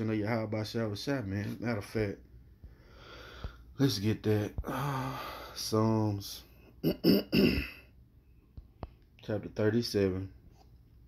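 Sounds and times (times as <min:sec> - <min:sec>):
man clearing his throat: 0:06.8 - 0:07.9.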